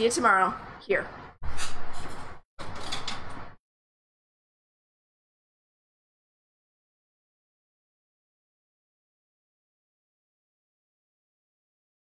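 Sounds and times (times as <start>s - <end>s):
rough scraping noise: 1.1s - 3.6s.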